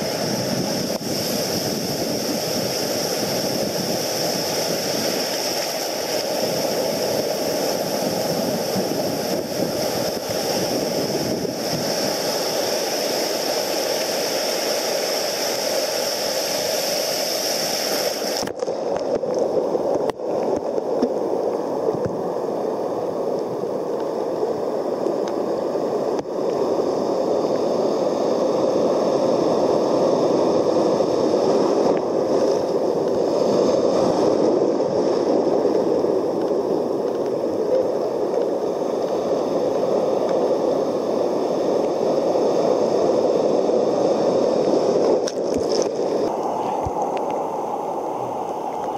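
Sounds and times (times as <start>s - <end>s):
ocean surf sloshing: 0.0s - 48.9s.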